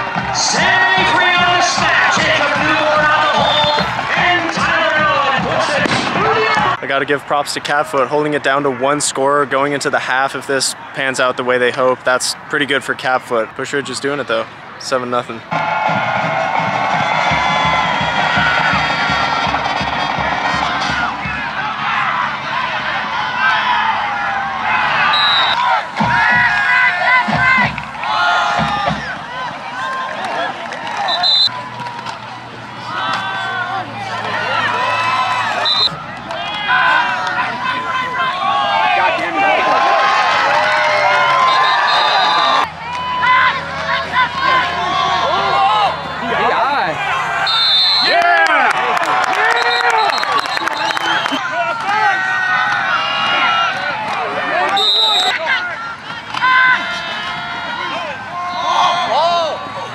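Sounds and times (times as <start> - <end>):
music playing: 0.0 - 6.8
crowd shouting and cheering: 0.0 - 59.9.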